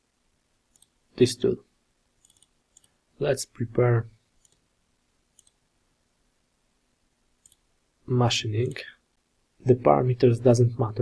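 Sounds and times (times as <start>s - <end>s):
faint computer mouse clicks: 0.7s - 1.0s, 2.2s - 3.0s, 4.4s - 4.6s, 5.3s - 5.6s, 7.4s - 7.6s.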